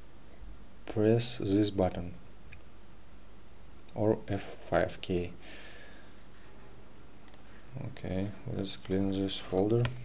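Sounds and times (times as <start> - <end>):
low hiss of room tone: 0.0 - 10.0.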